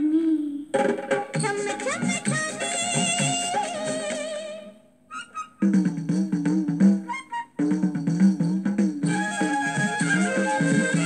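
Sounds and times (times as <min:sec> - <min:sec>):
film song instrumental music: 0:05.1 - 0:11.0.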